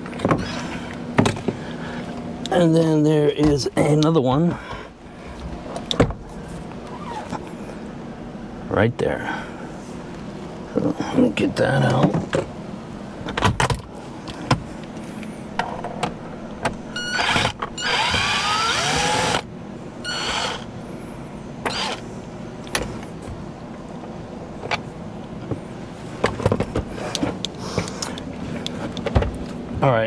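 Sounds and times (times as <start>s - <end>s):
electric screwdriver whirring: 17.0s - 19.5s, 20.1s - 20.7s, 21.7s - 22.0s.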